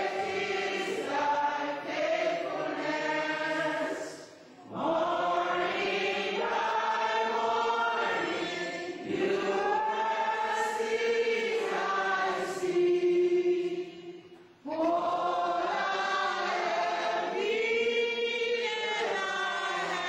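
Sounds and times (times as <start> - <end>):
congregation singing: 0.0 - 20.0.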